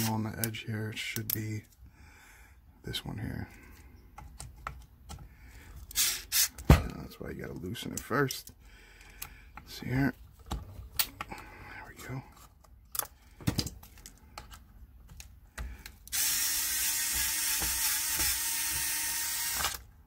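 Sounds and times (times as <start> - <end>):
clicks and taps of handling: 3.7 - 5.3
electric screwdriver running: 16.1 - 19.8.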